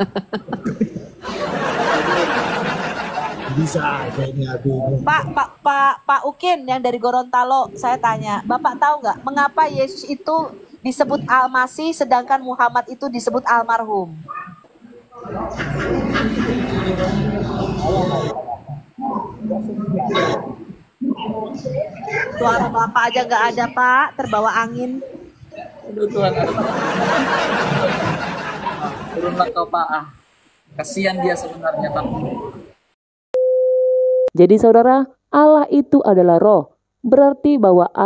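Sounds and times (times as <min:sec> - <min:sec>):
man's voice: 0:03.5 - 0:05.2
steady electronic beep tone: 0:33.4 - 0:34.3.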